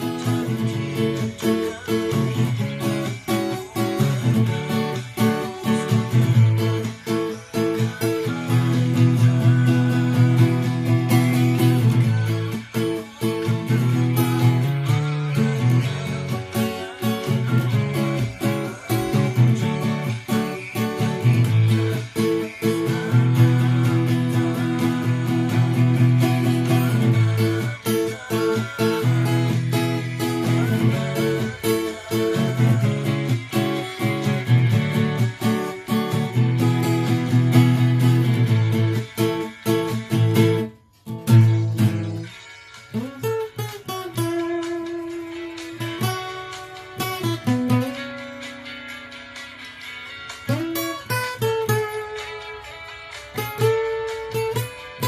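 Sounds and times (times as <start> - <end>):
acoustic guitar plucked: 0.0 - 55.0.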